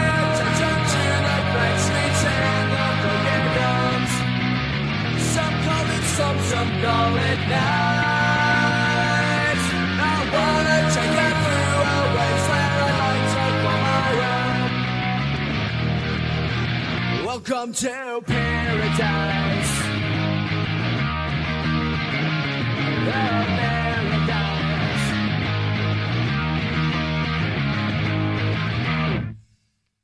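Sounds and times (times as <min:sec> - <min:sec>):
bass guitar: 0:00.0 - 0:17.3, 0:18.3 - 0:29.5
distorted electric guitar chords: 0:00.0 - 0:17.3, 0:18.3 - 0:29.4.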